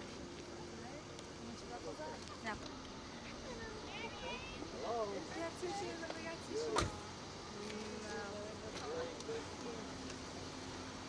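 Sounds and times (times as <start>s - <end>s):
people talking: 0.5s - 10.2s.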